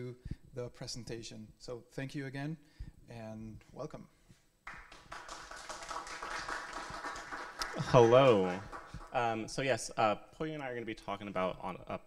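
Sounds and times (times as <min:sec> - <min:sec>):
audience clapping: 0:04.6 - 0:09.5.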